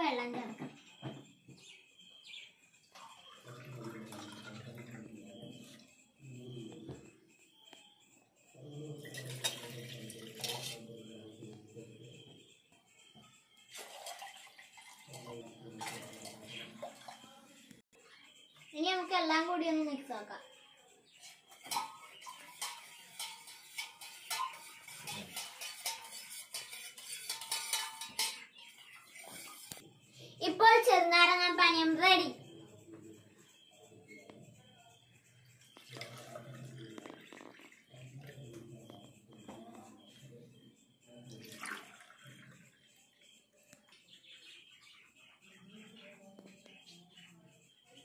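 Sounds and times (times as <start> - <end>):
child's voice: 0.0 - 0.7, 18.7 - 20.6, 30.4 - 32.5
glass and mug clattering: 3.0 - 5.8, 8.8 - 11.5, 13.7 - 17.3, 21.2 - 29.8, 35.8 - 40.2.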